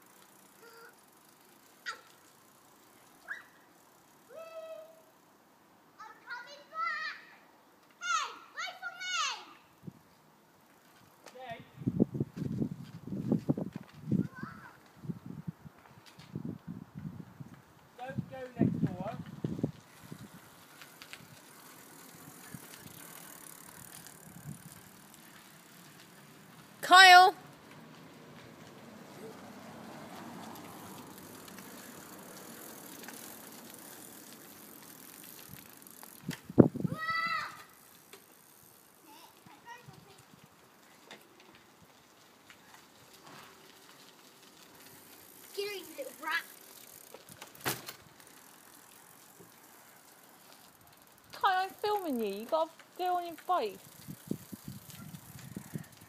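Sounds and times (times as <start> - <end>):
bicycle riding on tarmac: 0.0 - 56.0.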